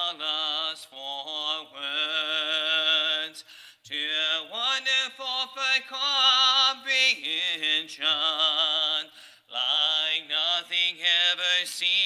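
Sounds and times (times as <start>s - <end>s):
man singing a hymn unaccompanied: 0.0s - 12.0s.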